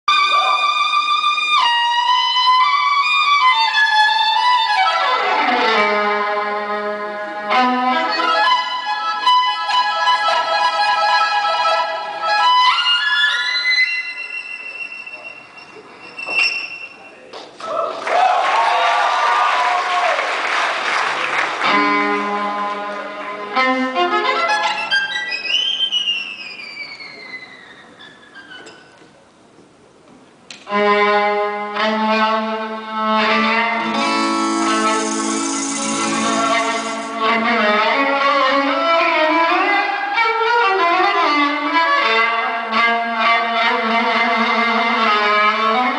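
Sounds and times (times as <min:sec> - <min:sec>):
solo fiddle playing: 0:21.6 - 0:25.3, 0:33.3 - 0:39.8
crowd noise: 0:33.8 - 0:38.3.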